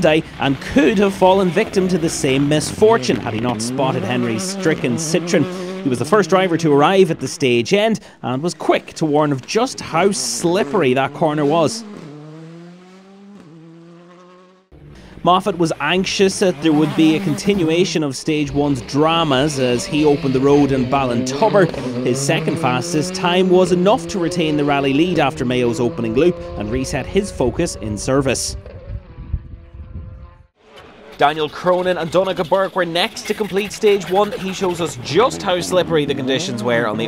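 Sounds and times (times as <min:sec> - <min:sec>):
rally car engine accelerating: 0:00.0 - 0:07.5, 0:08.8 - 0:37.0.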